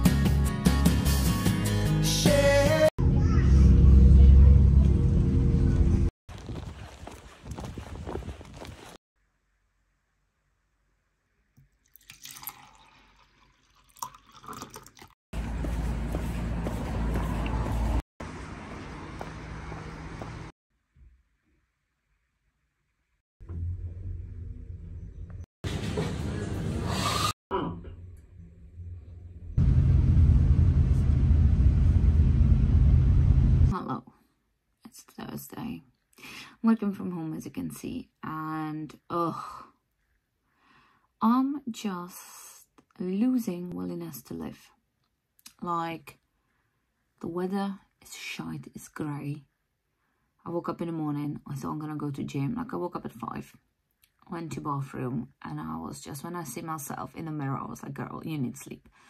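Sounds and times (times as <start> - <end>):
bus engine rumbling: 3.0 - 6.1, 15.4 - 20.5, 23.5 - 33.7.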